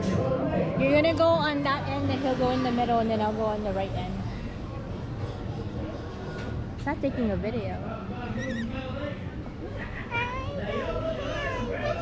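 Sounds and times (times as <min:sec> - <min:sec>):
crowd chatter: 0:00.0 - 0:12.0
children's voices: 0:10.1 - 0:12.0.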